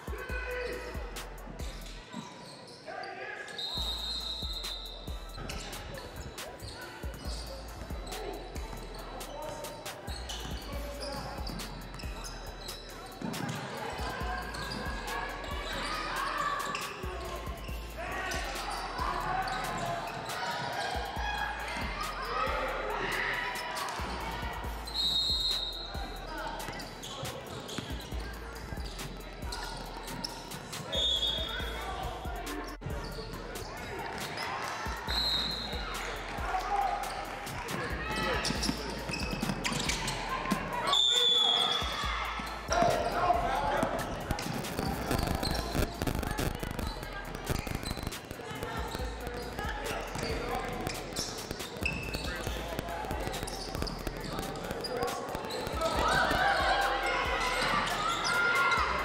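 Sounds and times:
voices of players and spectators: 0.0s - 59.0s.

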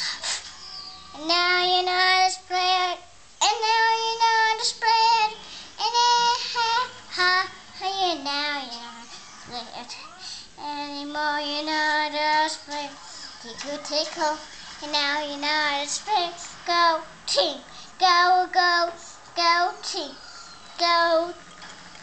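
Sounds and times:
child singing: 1.1s - 20.2s, 20.8s - 21.4s.

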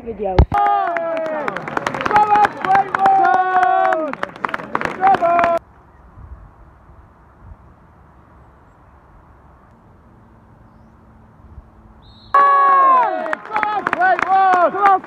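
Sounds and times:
loud voices shouting and chanting: 0.6s - 5.6s.

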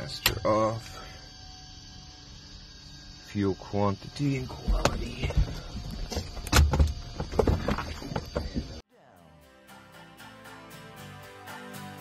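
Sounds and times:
knocks and thumps: 4.6s - 8.8s.

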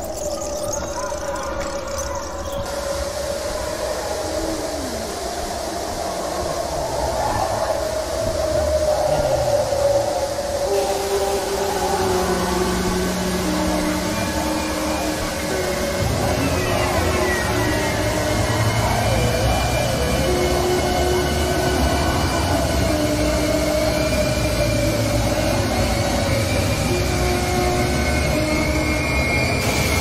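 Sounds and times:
waterfall rushing: 1.1s - 30.0s.

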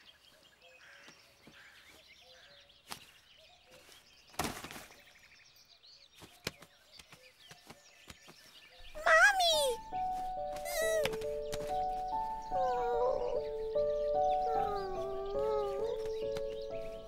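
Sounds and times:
soft background music: 8.9s - 17.0s.

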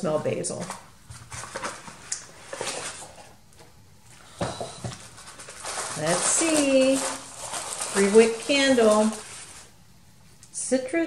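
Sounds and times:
tissue paper rustling: 0.6s - 3.4s, 4.2s - 9.8s.

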